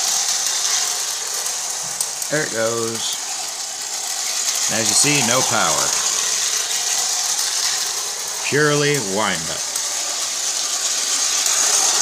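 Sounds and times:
clockwork toy tram whirring: 0:00.0 - 0:12.0.

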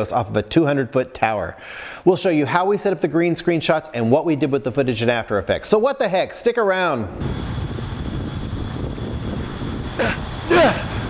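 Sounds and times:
drone propellers hovering: 0:07.1 - 0:11.0
person calling out: 0:10.0 - 0:10.9.

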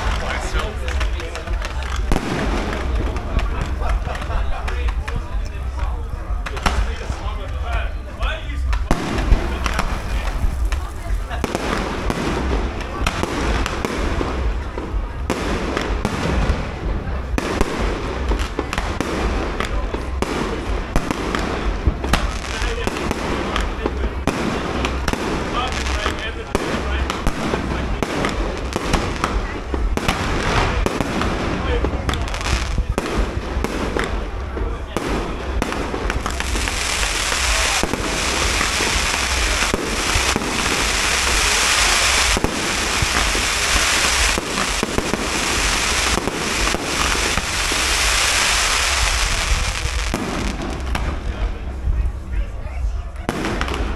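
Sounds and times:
fireworks crackling hiss: 0:00.0 - 0:52.2
fireworks launching and bursting: 0:00.0 - 0:52.3, 0:53.2 - 0:53.9.

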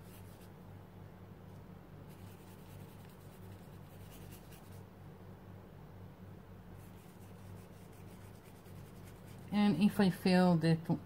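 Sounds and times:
paintbrush scratching on paper: 0:00.0 - 0:00.5, 0:02.1 - 0:04.8, 0:06.8 - 0:09.9
low steady hum: 0:00.0 - 0:11.0.

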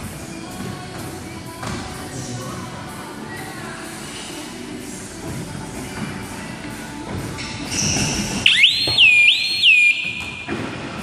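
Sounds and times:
shrill whistle blast: 0:08.5 - 0:10.3.

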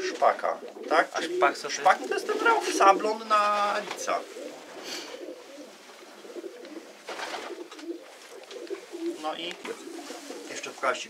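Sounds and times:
pigeons cooing: 0:00.0 - 0:10.8
short rustles: 0:07.1 - 0:10.9.

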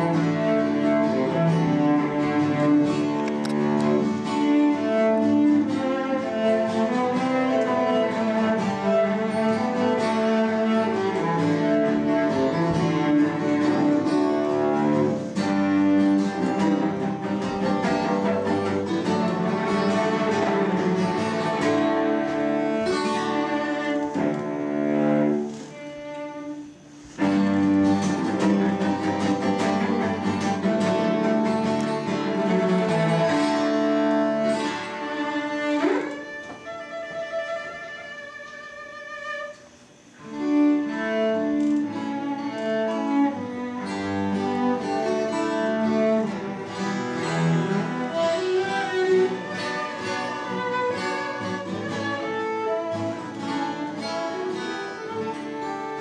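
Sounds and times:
bowed cello: 0:00.0 - 0:56.0.

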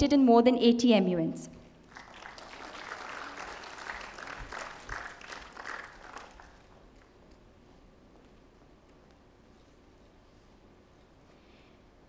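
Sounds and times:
audience applauding: 0:01.8 - 0:07.2.

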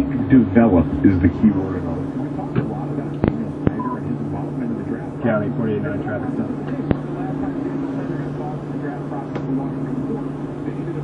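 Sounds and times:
faint radio voices: 0:00.0 - 0:11.0
steady low hum: 0:00.0 - 0:11.0
short electronic beep: 0:03.8 - 0:04.0.

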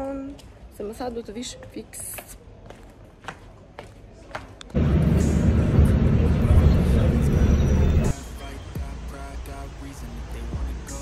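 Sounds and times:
loud low rumbling: 0:04.8 - 0:08.1.

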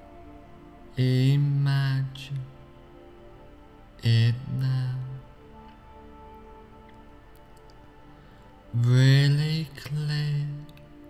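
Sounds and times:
soft ambient background music: 0:00.0 - 0:11.0
man speaking slowly: 0:00.9 - 0:02.6, 0:04.0 - 0:05.4, 0:08.7 - 0:10.8.

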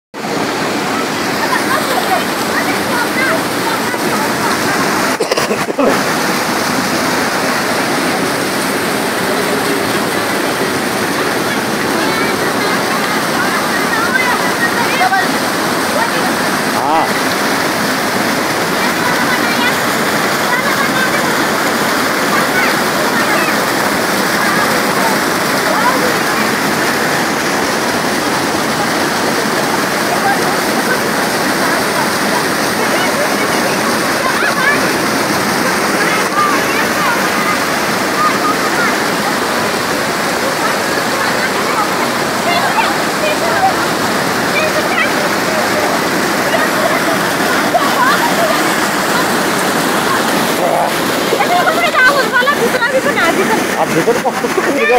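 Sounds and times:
flood water rushing down rocky channel: 0:00.2 - 0:54.9.

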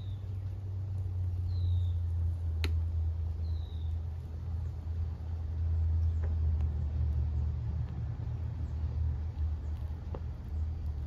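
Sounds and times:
faint crackles: 0:00.0 - 0:11.0
flames burning: 0:00.0 - 0:11.0.

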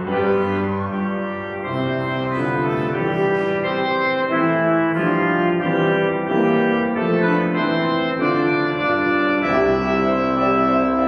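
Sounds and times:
church pipe organ chords: 0:00.0 - 0:11.0.

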